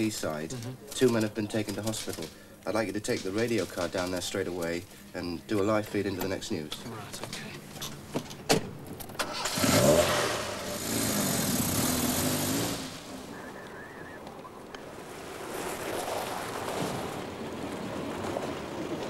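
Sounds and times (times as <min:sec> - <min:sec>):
car driving up: 0:09.1 - 0:13.4
car engine starting and revving: 0:09.2 - 0:13.3.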